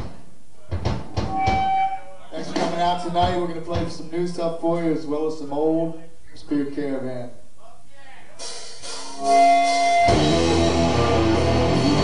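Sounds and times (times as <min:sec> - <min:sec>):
faint stage and crowd noise: 0:07.5 - 0:10.7
steady high tone: 0:09.1 - 0:10.8.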